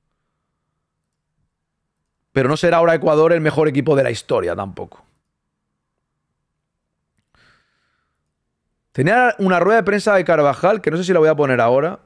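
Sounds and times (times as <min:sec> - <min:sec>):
breath near a microphone: 0:07.2 - 0:08.3.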